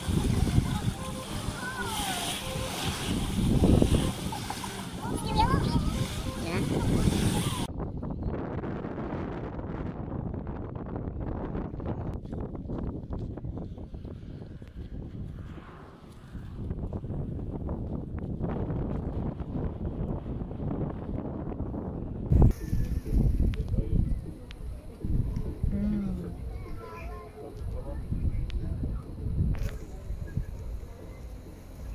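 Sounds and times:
wind buffeting microphone: 0:00.0 - 0:31.9.

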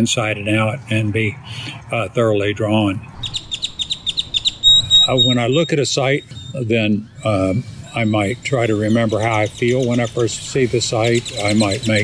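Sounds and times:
songbird chirping: 0:02.9 - 0:12.0
bird high whistle: 0:03.2 - 0:06.6.

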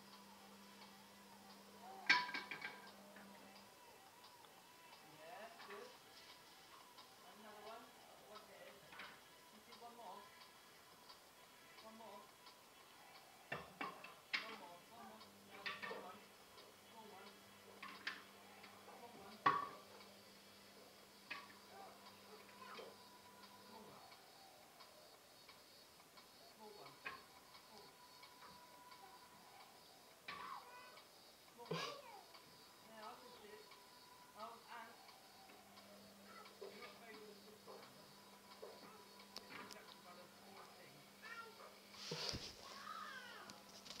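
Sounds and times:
faint ticking: 0:00.0 - 0:44.0
faint voice: 0:27.6 - 0:33.7, 0:34.3 - 0:43.6.

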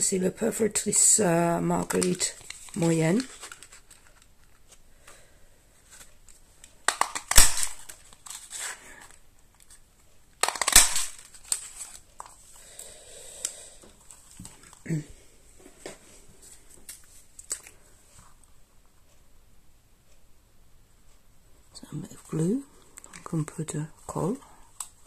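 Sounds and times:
card and punch clicking and rustling: 0:01.8 - 0:05.2, 0:05.9 - 0:09.8, 0:10.4 - 0:12.4
craft punch snapping through card: 0:06.9 - 0:07.8, 0:10.4 - 0:11.2.

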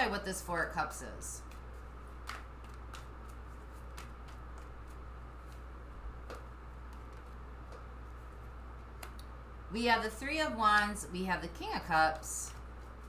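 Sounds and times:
steady low hum: 0:00.0 - 0:13.0
cards clicking while shuffled: 0:01.4 - 0:09.3.

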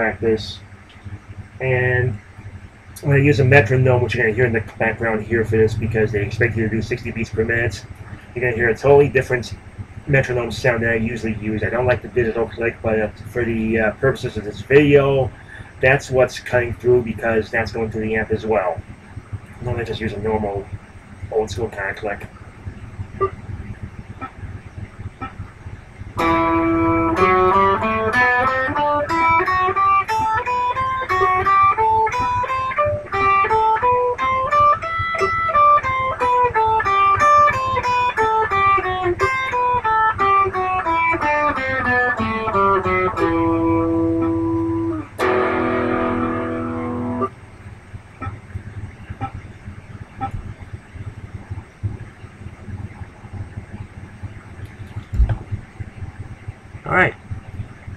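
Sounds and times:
electric guitar picking notes: 0:00.0 - 0:20.8, 0:26.2 - 0:47.6.

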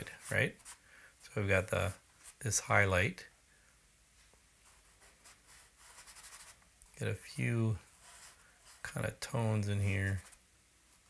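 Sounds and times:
charcoal scratching on paper: 0:04.6 - 0:06.6, 0:07.9 - 0:09.0.

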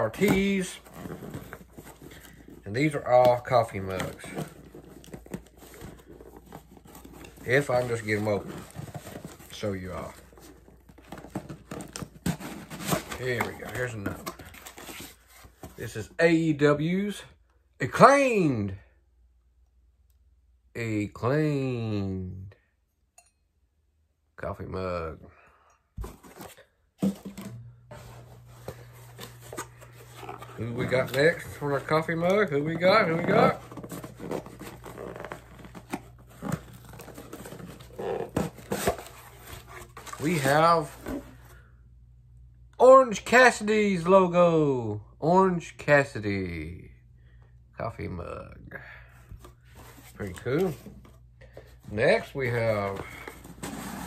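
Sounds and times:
wrapping rustling and tearing: 0:00.0 - 0:15.7, 0:28.0 - 0:41.4
package rustling: 0:26.0 - 0:41.5.

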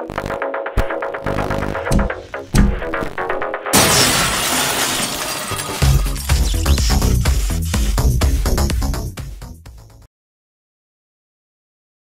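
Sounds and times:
glass shattering: 0:03.7 - 0:07.0.

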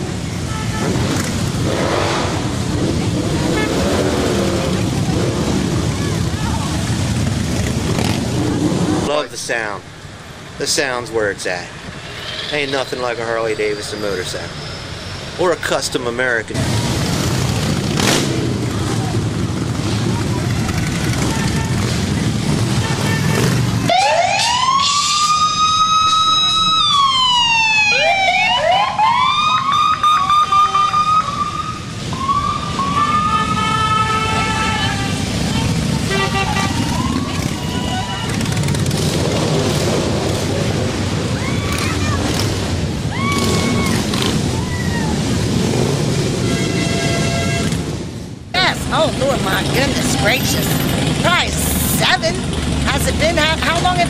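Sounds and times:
motorcycle engines rumbling past: 0:00.0 - 0:09.2, 0:16.5 - 0:24.0, 0:31.9 - 0:54.0
siren wailing: 0:23.9 - 0:34.8, 0:36.6 - 0:38.5.

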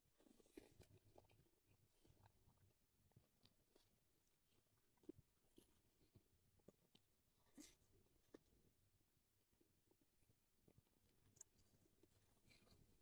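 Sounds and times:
person chewing meat: 0:00.1 - 0:08.7.

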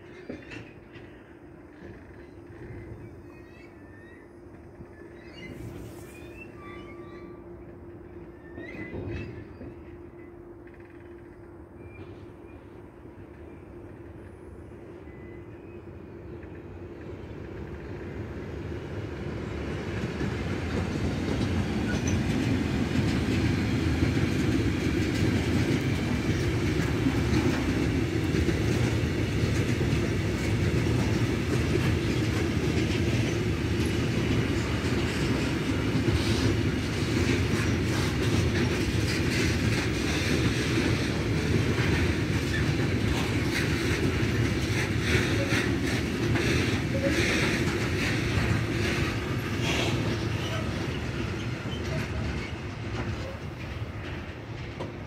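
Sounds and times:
freight train rumbling past: 0:00.0 - 0:55.0.

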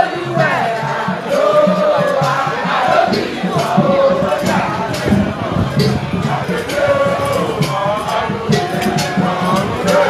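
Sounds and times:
crowd singing and chanting: 0:00.0 - 0:10.0
music with steady low beat: 0:00.0 - 0:10.0.

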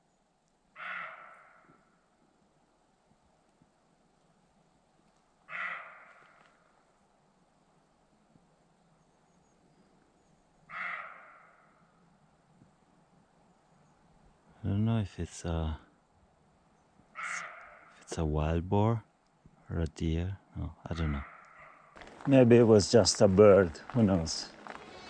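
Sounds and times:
wild animal calling: 0:00.8 - 0:01.9, 0:05.5 - 0:06.6, 0:10.7 - 0:11.8, 0:17.1 - 0:18.1, 0:20.9 - 0:22.0.

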